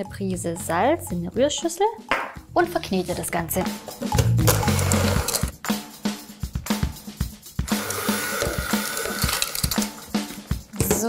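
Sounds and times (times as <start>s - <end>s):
electric hand mixer whirring: 7.7s - 9.8s.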